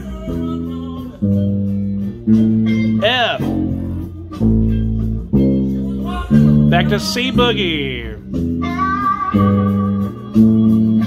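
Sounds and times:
bass guitar plucked notes: 1.4 - 8.7.

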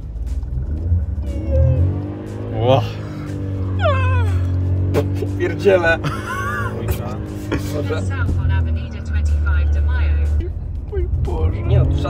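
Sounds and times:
car engine running: 0.0 - 12.0
voices shouting: 1.2 - 6.0.

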